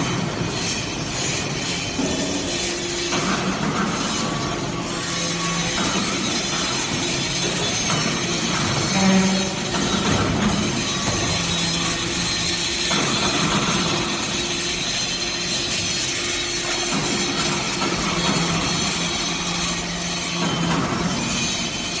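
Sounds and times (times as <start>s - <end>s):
loud machinery hiss: 0.0s - 22.0s
low hydraulic hum: 0.0s - 22.0s.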